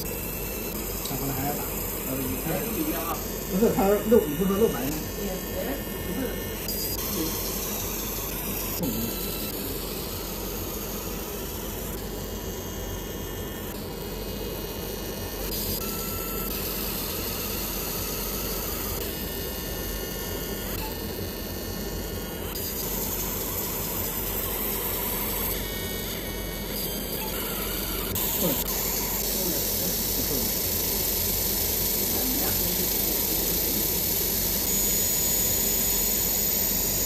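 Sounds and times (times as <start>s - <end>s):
high whining tones: 0.0s - 12.1s, 20.5s - 37.0s
laser machine hissing: 0.0s - 37.0s.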